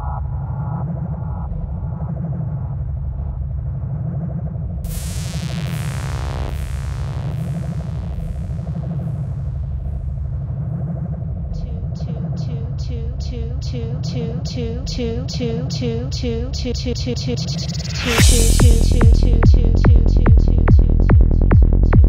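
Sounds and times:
low synthesizer drone: 0:00.0 - 0:22.0.

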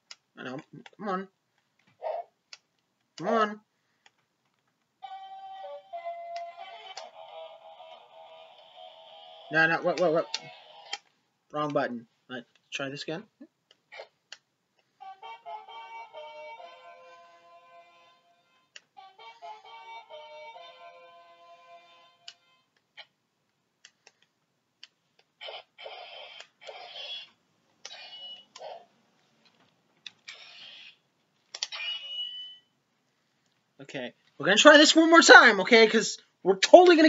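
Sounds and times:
toy electronic flute melody: 0:05.0 - 0:09.5, 0:15.0 - 0:22.6.

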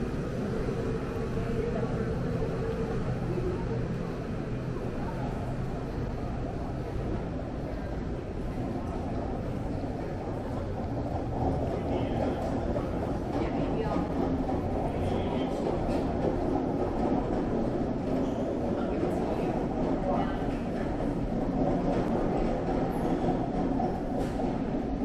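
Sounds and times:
distant murmured voices: 0:00.0 - 0:25.0
low hall rumble: 0:00.0 - 0:25.0.

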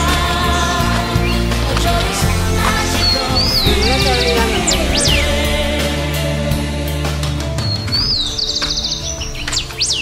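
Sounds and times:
bird trilling and whistling: 0:07.6 - 0:10.0.

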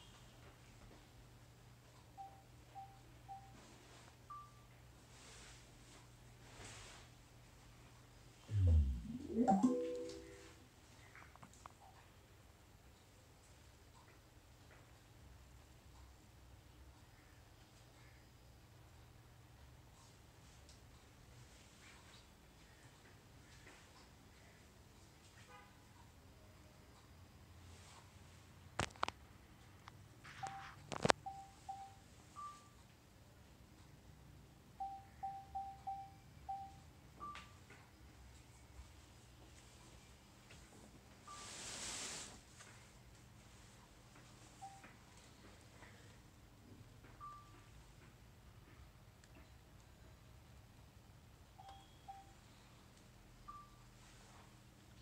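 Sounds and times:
higher longer selection beep: 0:08.5 - 0:10.5.

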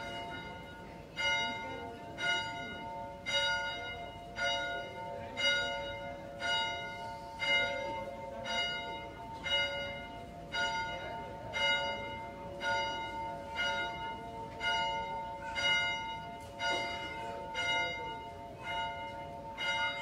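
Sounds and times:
large bell ringing: 0:00.0 - 0:20.0.

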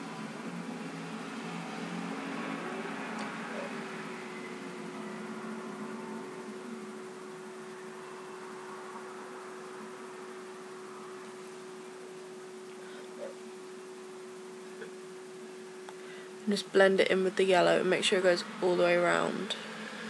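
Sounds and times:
faint steady hum: 0:00.0 - 0:20.0
microphone hiss: 0:00.0 - 0:20.0.

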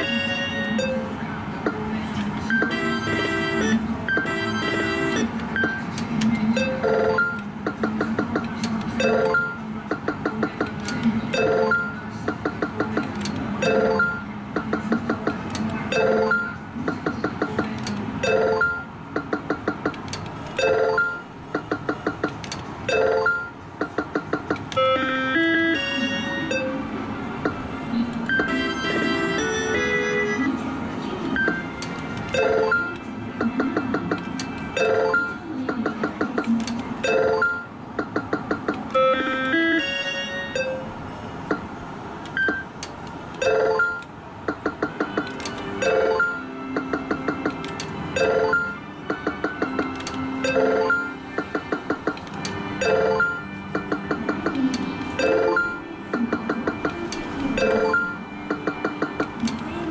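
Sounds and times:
steady arcade hum: 0:00.0 - 0:59.9
melodic electronic tones: 0:37.0 - 0:41.0, 0:55.1 - 0:59.3
ticking beeps: 0:42.3 - 0:42.8.

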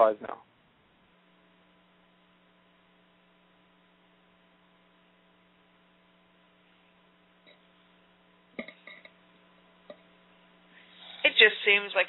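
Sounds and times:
faint electrical hum with hiss: 0:00.0 - 0:12.0.

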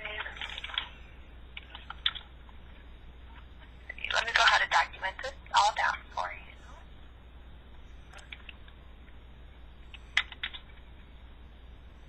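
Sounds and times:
indistinct speech over telephone: 0:03.9 - 0:06.8.

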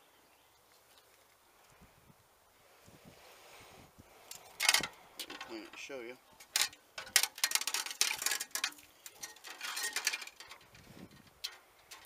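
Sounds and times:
rag scraping metal cable: 0:04.3 - 0:12.0
metallic ticks from cable: 0:06.4 - 0:12.0.

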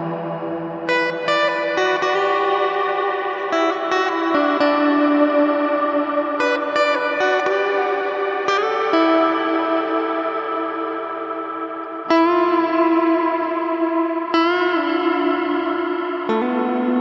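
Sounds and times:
electric guitar with reverb: 0:00.0 - 0:17.0.

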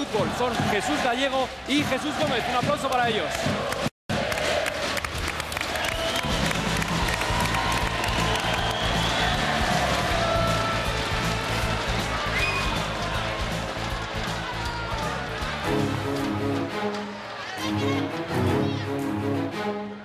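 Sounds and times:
audience applause and cheering: 0:00.0 - 0:20.0.

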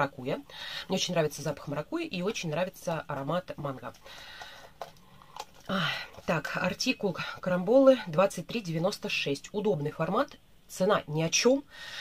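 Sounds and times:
plastic bottle rustle: 0:03.1 - 0:07.6.

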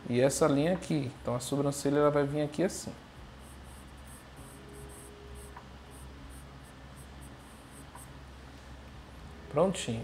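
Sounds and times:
pencil sketching on paper: 0:03.4 - 0:08.0.

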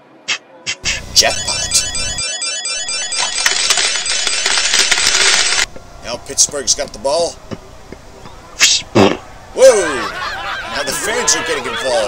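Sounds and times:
repeating ringing tones: 0:01.1 - 0:05.7.

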